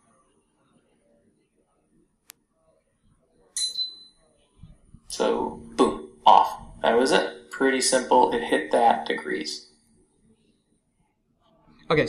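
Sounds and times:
pressure cooker beep: 3.6 - 4.2.

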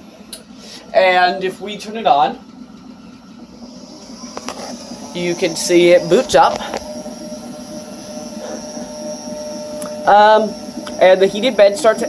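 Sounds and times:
cooling fans whirring: 0.0 - 12.0
faint high whine: 0.7 - 12.0.

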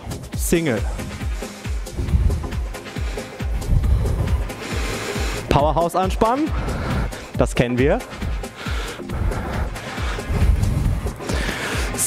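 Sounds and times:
workout music with steady beat: 0.0 - 12.0.

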